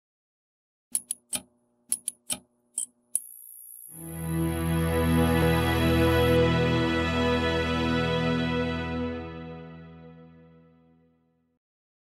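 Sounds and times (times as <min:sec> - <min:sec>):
sharp electric clicks: 0:01.0 - 0:04.0.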